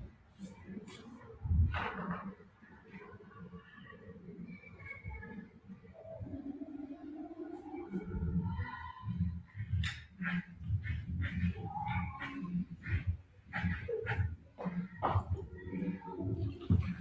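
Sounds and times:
indistinct voices talking: 0.0s - 17.0s.

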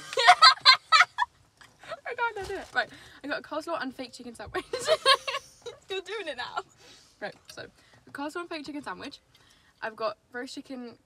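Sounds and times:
young women laughing: 0.0s - 2.0s, 4.6s - 5.9s.

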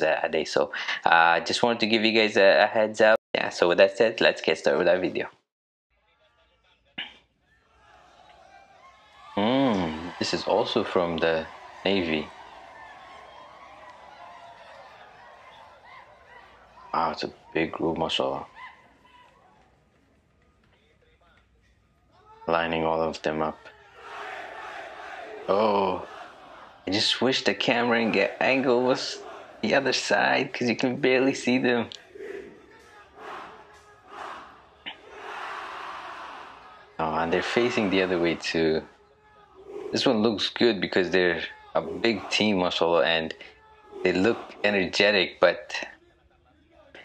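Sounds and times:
distant soldiers shouting and chanting: 6.0s - 47.0s.

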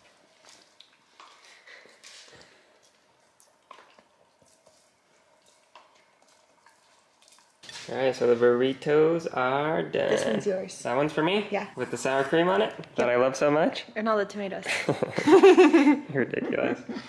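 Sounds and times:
dogs chewing bones: 0.0s - 7.9s.

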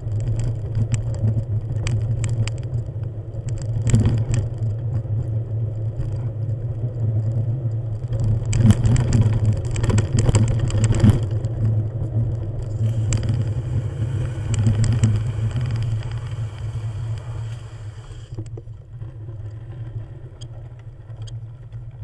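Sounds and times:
vehicle engine drone: 0.0s - 18.6s
gravel clicks and rattles: 0.0s - 22.0s.

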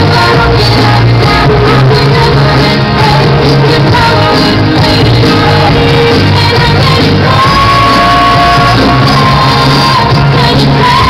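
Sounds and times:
live pop-rock band through pa: 0.0s - 11.0s.

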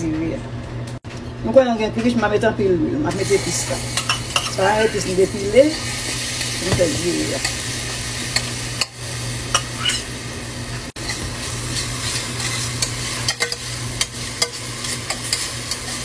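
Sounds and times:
paste sizzling in hot oil: 11.0s - 16.0s.

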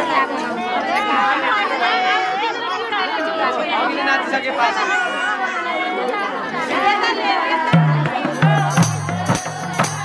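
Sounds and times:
women chattering: 0.0s - 9.8s.

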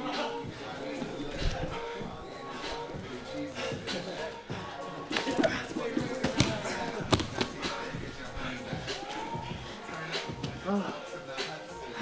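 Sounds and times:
background music: 0.0s - 12.0s
bodies thudding on foam mats: 6.1s - 7.6s.

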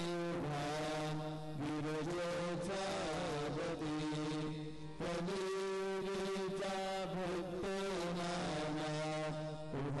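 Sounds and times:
hymn sung in long held notes: 0.0s - 10.0s.

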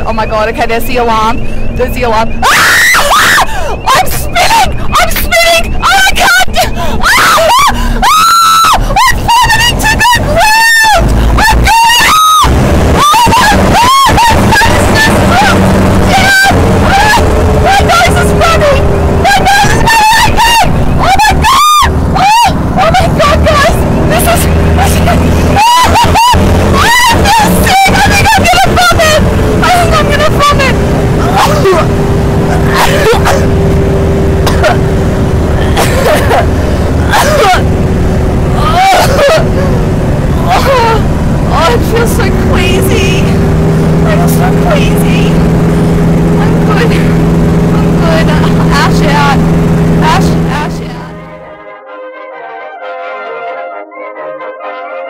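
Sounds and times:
aircraft engine drone: 0.0s - 51.5s
steady falling tone: 0.0s - 51.7s
woman screaming: 2.4s - 33.6s, 34.4s - 34.9s, 35.6s - 37.8s, 38.4s - 43.4s.

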